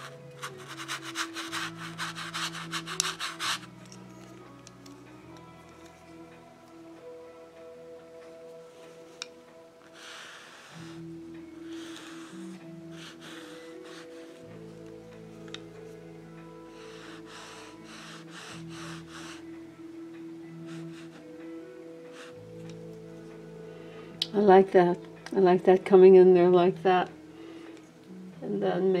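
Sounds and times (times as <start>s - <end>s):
brush scratching on canvas: 0.0s - 4.3s
soft background music chords: 0.0s - 29.0s.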